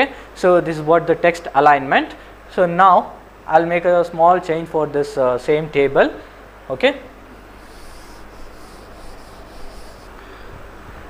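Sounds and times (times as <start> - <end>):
chalk writing on board: 7.6 - 10.2
duster scraping a chalkboard: 7.6 - 10.2.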